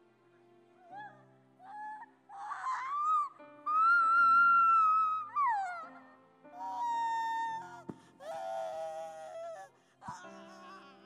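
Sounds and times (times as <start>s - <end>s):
woman wailing: 1.6s - 11.0s.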